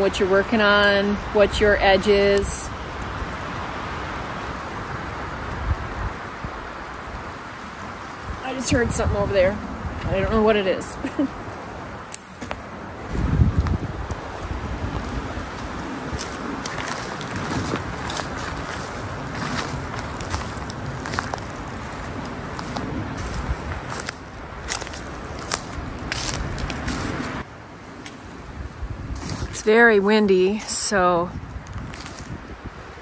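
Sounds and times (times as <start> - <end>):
sharp crackles and snaps: 0.0 - 28.4, 29.0 - 29.8, 30.5 - 33.0
strong wind gusting: 0.0 - 33.0.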